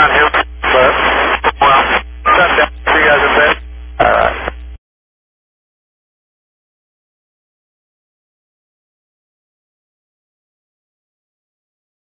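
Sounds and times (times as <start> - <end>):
person speaking over radio: 0.0 - 4.6
steady low hum: 0.0 - 4.8.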